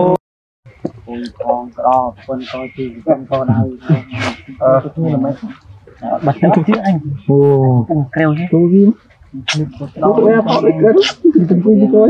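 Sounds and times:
people talking: 0:00.0 - 0:00.2, 0:00.8 - 0:12.0.

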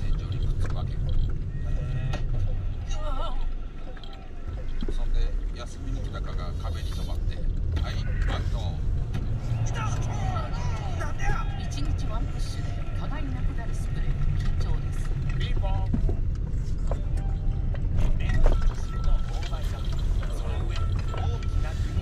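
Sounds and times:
indistinct voices: 0:00.0 - 0:16.1
road and engine rumble: 0:00.0 - 0:22.0.

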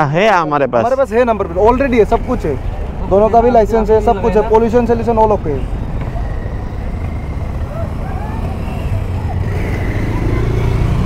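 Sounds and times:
faint voices: 0:01.4 - 0:10.8.

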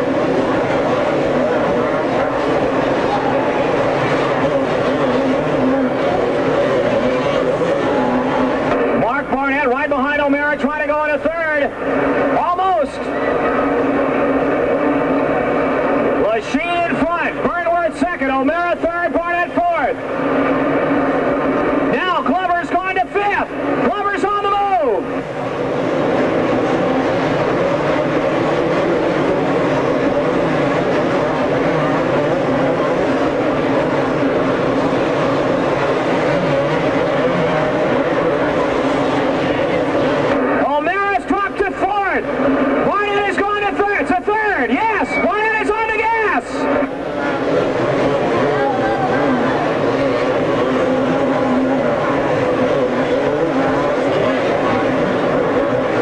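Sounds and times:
motocross bikes revving: 0:00.0 - 0:56.0
steady drone of engines: 0:00.0 - 0:56.0.

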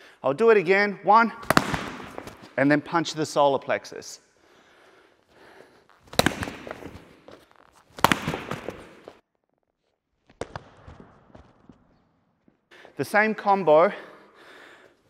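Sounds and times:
gloved strikes landing: 0:01.4 - 0:02.6, 0:06.0 - 0:09.2.

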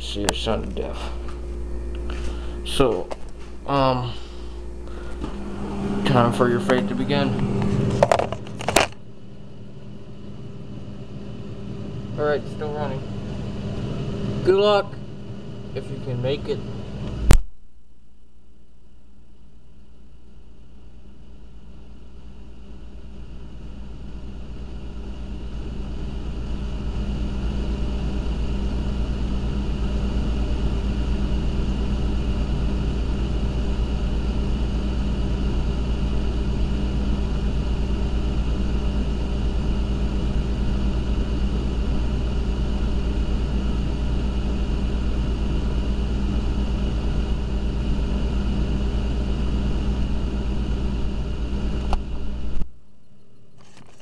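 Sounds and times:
freezer compressor hum: 0:00.0 - 0:54.0.

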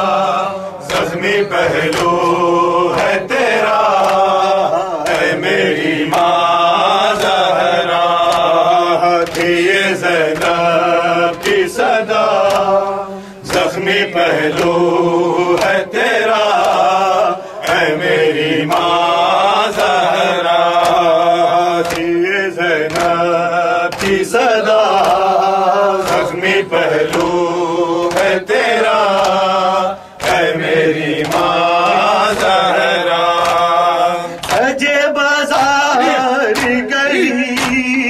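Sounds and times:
men chanting: 0:00.0 - 0:38.0
rhythmic hand chest-beating: 0:00.0 - 0:38.0
person singing into a microphone: 0:31.2 - 0:38.0.

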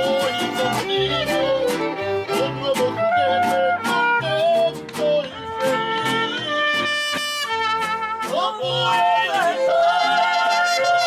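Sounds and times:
strummed guitars: 0:00.0 - 0:11.0
singers holding a long note: 0:08.3 - 0:11.0.

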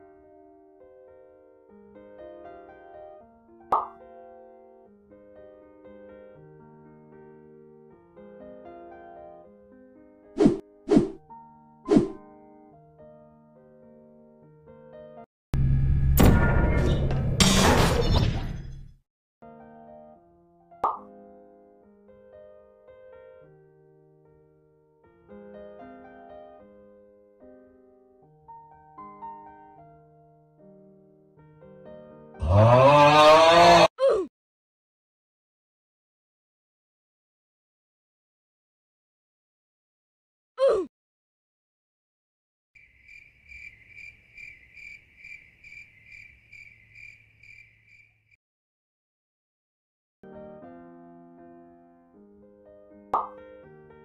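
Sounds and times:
soft keyboard music: 0:00.0 - 0:15.3, 0:19.4 - 0:32.4, 0:50.2 - 0:54.0
sharp pop sound effect: 0:03.7 - 0:04.0, 0:20.8 - 0:21.1, 0:53.2 - 0:53.4
cricket chirping: 0:42.8 - 0:48.4.

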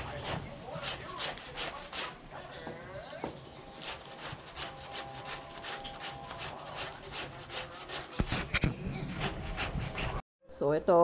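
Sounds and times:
laundry scrubbed on washboard: 0:00.0 - 0:02.5, 0:03.7 - 0:10.2.

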